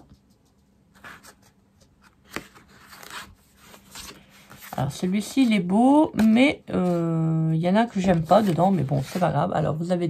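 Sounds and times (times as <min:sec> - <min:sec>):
paper pad rustling and scraping: 0:00.4 - 0:09.9.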